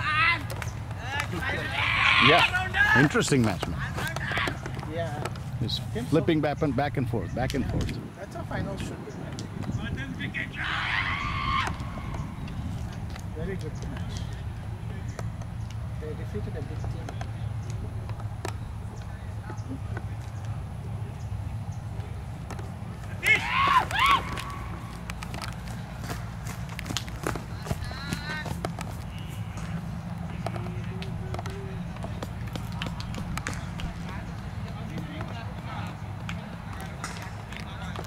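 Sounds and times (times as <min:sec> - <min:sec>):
distant indistinct voices: 0:00.0 - 0:38.0.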